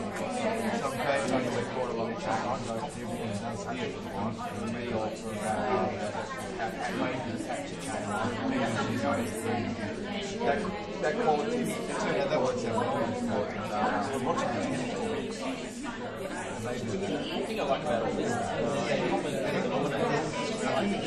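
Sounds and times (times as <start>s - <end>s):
many people talking at once: 0.0s - 21.0s.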